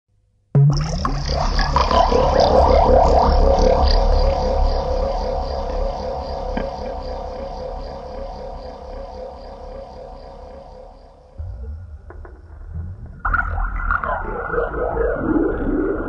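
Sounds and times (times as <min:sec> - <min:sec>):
wavering drone tone: 0:00.8 - 0:16.0
low rumble: 0:11.3 - 0:16.0.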